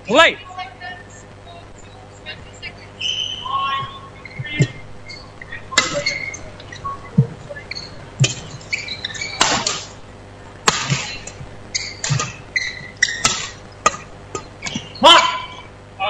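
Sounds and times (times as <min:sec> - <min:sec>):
shoes squeaking on court: 0:02.6 - 0:10.0, 0:10.8 - 0:15.0
racket striking shuttlecock: 0:08.2 - 0:10.0, 0:10.6 - 0:15.0
player shouting: 0:15.0 - 0:15.6.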